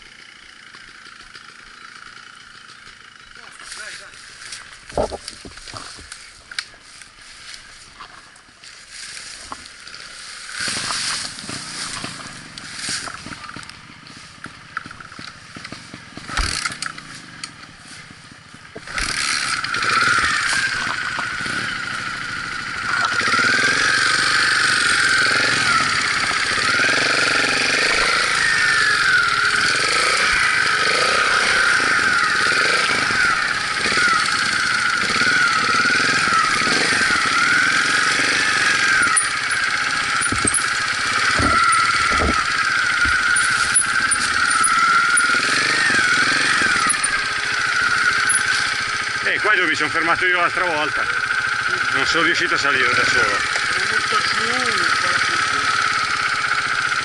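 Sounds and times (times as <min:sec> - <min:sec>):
motorcycle engine revving: 0:00.0 - 0:08.3, 0:08.9 - 0:57.0
motorcycle knocking over rough ground: 0:04.6 - 0:06.2, 0:10.6 - 0:21.6, 0:35.1 - 0:49.1.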